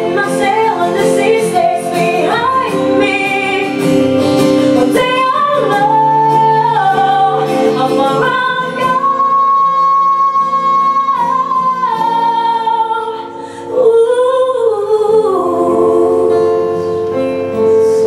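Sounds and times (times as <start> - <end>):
strummed acoustic guitar: 0.0 - 13.8, 15.2 - 18.0
woman singing: 0.0 - 18.0.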